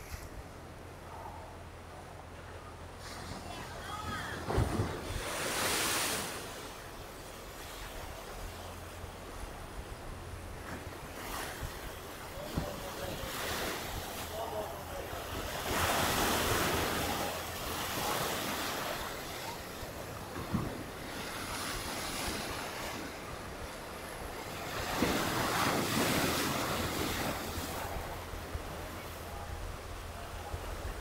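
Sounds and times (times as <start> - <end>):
sea waves breaking on rocks: 3.0 - 8.9, 10.5 - 29.0.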